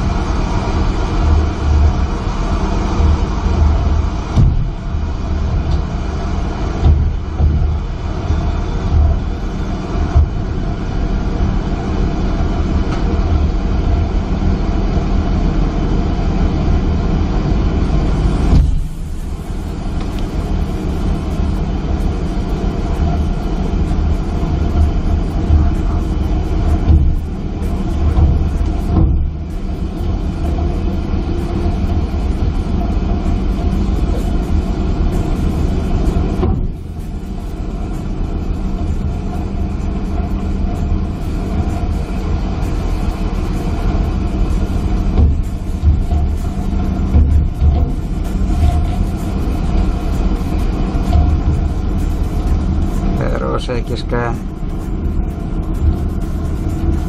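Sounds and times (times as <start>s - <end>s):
boat engine and deck machinery drone: 0.0s - 57.0s.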